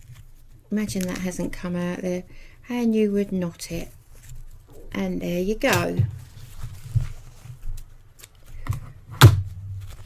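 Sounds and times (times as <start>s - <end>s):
fabric rustling and knocking: 5.7s - 7.7s.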